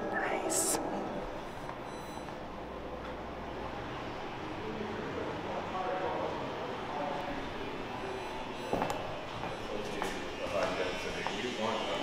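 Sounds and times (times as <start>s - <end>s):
faint indistinct voices: 2.8s - 12.0s.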